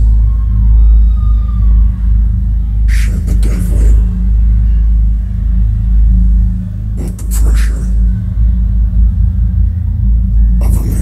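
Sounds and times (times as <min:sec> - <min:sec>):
crowd shouting and cheering: 0:00.0 - 0:02.9
deep bass drone: 0:00.0 - 0:11.0.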